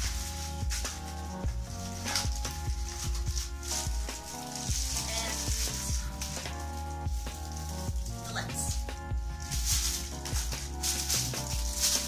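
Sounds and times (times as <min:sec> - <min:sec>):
background music with sustained notes: 0:00.0 - 0:12.0
items pulled from cardboard box: 0:00.0 - 0:12.0
plastic wrap crinkling: 0:00.0 - 0:12.0.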